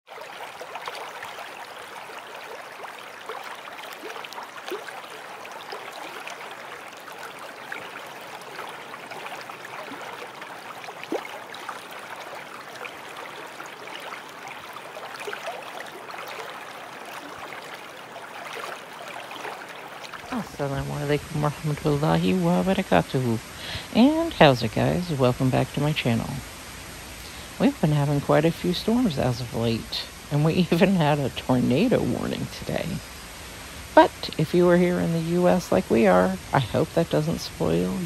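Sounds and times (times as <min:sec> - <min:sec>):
water dripping and splashing: 0:00.1 - 0:38.0
water washing: 0:00.1 - 0:38.0.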